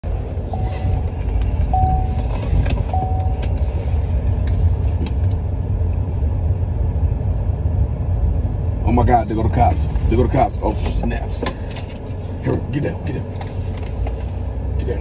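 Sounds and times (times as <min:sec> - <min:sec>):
car engine and road rumble: 0:00.0 - 0:15.0
dashboard warning chime beeps: 0:00.5 - 0:03.6.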